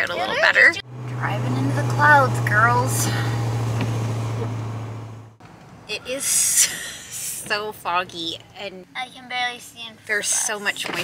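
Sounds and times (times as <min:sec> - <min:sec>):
truck engine and road noise: 0:00.0 - 0:11.0.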